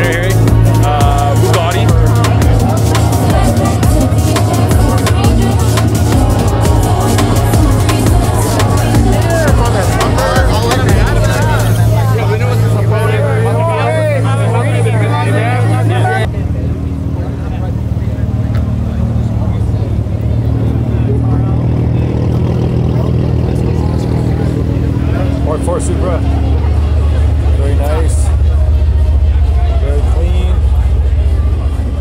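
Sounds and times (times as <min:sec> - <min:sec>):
car engine idling: 0:00.0 - 0:32.0
crowd chatter: 0:00.0 - 0:32.0.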